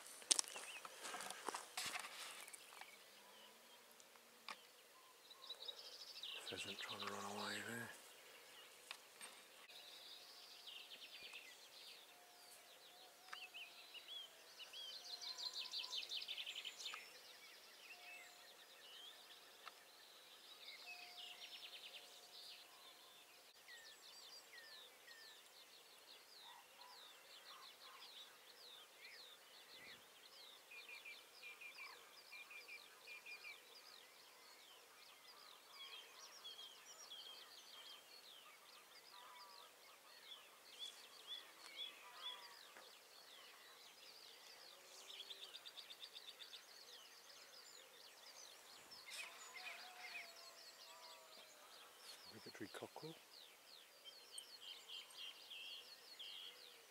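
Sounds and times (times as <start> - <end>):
songbirds singing: 0.0 - 56.9.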